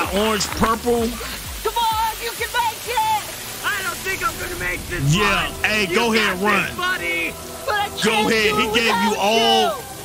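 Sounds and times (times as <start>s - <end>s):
steady hiss: 0.0s - 10.0s
voices speaking: 0.0s - 10.0s.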